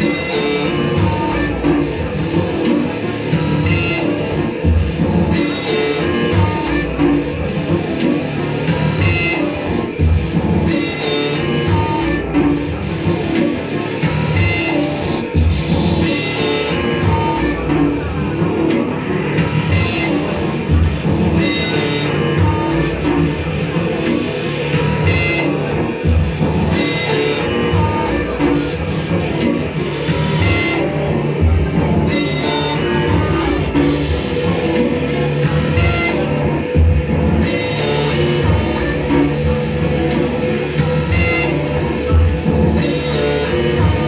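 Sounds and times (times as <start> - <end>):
guitar: 0.0 - 44.0
heavy low bass notes: 0.0 - 44.0
live band playing loud music: 0.0 - 44.0.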